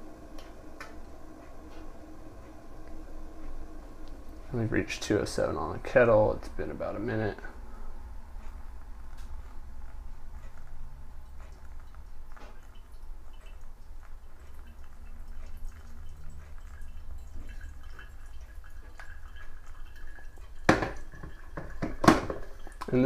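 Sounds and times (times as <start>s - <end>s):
water trickling onto coffee grounds: 0.4s - 7.6s, 8.4s - 23.0s.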